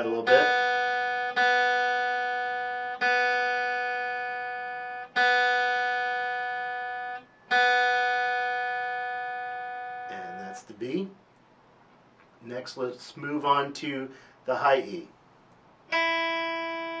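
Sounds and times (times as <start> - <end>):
electric guitar string plucked: 0.0 - 10.5, 15.9 - 17.0.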